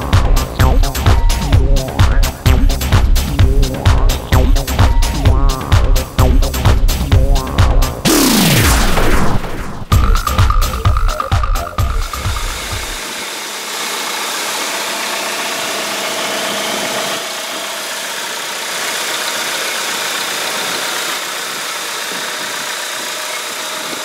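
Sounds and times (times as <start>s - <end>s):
car engine idling: 9.8s - 24.0s.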